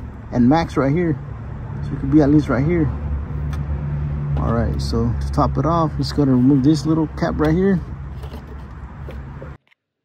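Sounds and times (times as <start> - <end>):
low outdoor rumble: 0.0 - 9.6.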